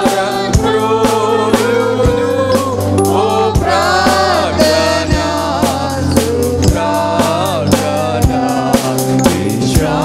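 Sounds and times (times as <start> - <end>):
group singing a hymn: 0.0 - 10.0
steady drum beat: 0.0 - 10.0.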